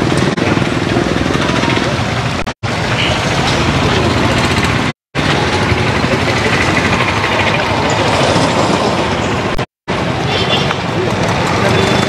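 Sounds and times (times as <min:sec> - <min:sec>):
passing motorcycles: 0:00.0 - 0:12.0
people talking while walking: 0:00.0 - 0:12.0.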